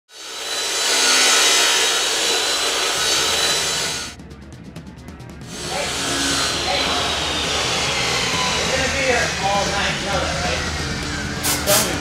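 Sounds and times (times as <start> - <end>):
power tool grinding metal: 0.1 - 4.1, 5.5 - 12.0.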